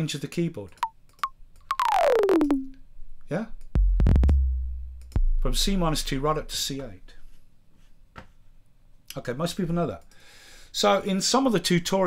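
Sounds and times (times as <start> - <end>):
high pitched kick drum notes sliding down: 1.7 - 2.7, 3.8 - 6.8.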